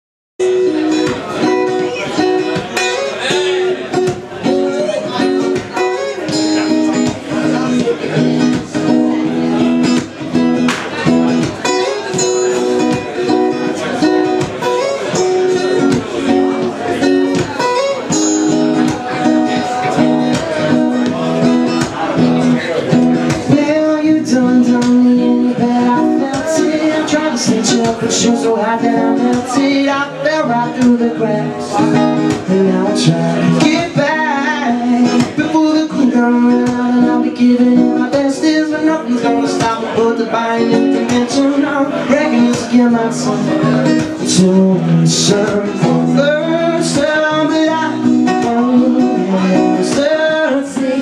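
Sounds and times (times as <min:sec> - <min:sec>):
guitar chords strummed: 0:00.4 - 0:51.0.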